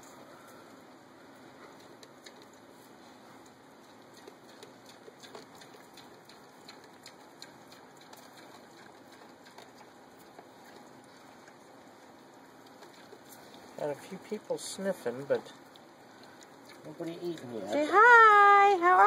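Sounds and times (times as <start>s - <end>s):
pigs snuffling: 0.0s - 19.0s.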